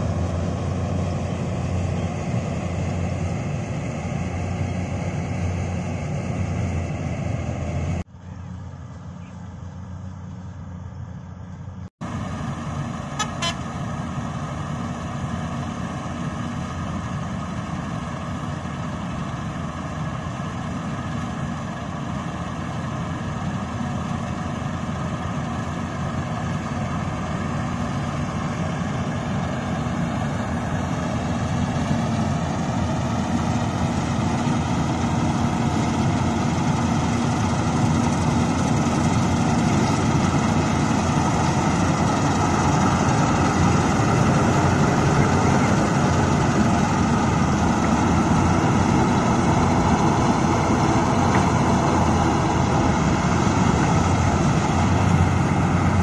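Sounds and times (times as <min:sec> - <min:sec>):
combine harvester engine and threshing: 0:00.0 - 0:56.0.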